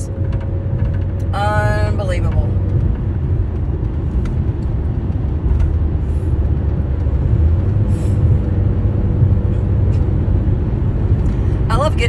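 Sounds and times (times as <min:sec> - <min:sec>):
road and engine noise in car cabin: 0:00.0 - 0:12.0.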